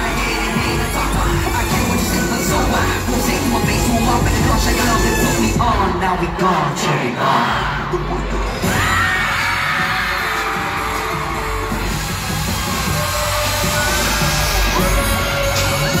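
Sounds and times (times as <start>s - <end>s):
fans screaming and cheering: 0.0s - 16.0s
loud pop concert music: 0.0s - 16.0s.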